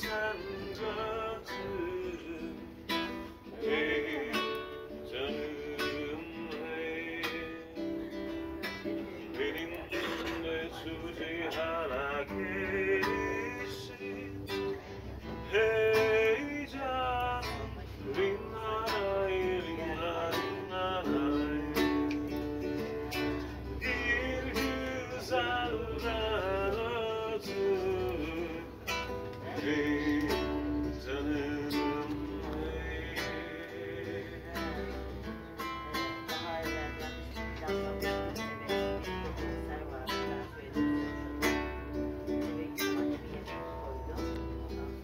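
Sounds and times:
acoustic guitar strumming: 0:00.0 - 0:45.0
man singing: 0:00.0 - 0:45.0.

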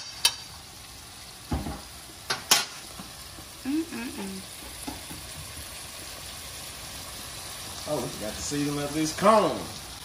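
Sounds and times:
food sizzling in a skillet: 0:00.0 - 0:10.0.

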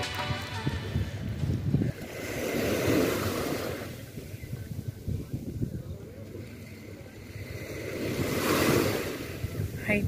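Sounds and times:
sea waves washing onto shore: 0:00.0 - 0:10.0
wind rumbling on microphone: 0:00.0 - 0:10.0.

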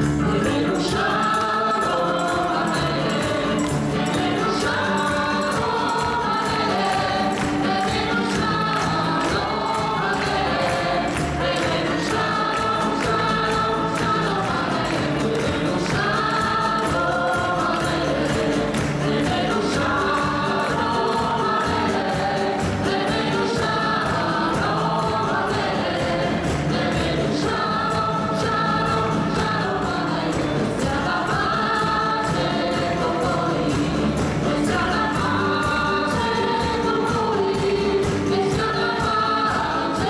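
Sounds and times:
choir singing with band: 0:00.0 - 0:40.0
quick drum beat: 0:00.0 - 0:40.0.

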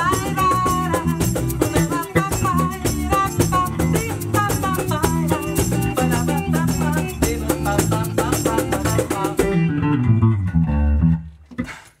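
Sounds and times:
rhythmic percussion: 0:00.0 - 0:09.7
electric guitar: 0:00.0 - 0:11.9
bass guitar: 0:00.0 - 0:12.0.

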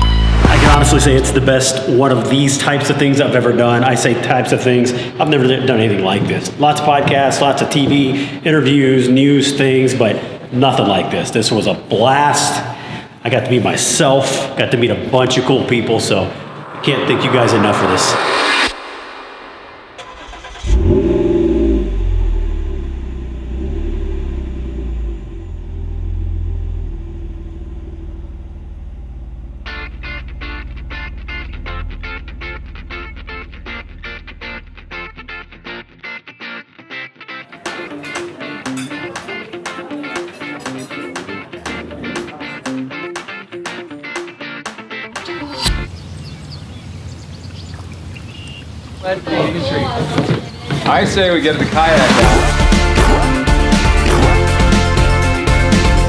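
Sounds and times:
steady low rumble: 0:14.9 - 0:35.7
car engine starting and idling: 0:19.9 - 0:35.9
strummed guitar music: 0:29.7 - 0:45.4
faint bird chirps: 0:45.9 - 0:49.1.

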